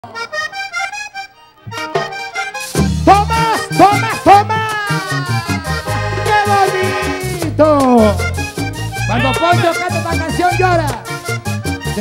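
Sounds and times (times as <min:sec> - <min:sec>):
button accordion melody: 0:00.0 - 0:12.0.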